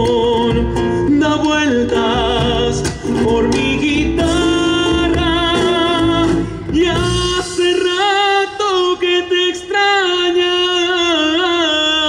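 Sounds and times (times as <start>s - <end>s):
instrumental accompaniment: 0.0s - 8.9s
man singing: 0.0s - 12.0s.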